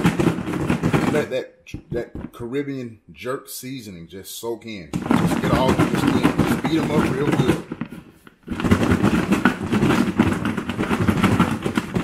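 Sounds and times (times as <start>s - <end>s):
chicken wings rattling in plastic container: 0.0s - 1.3s, 4.9s - 12.0s.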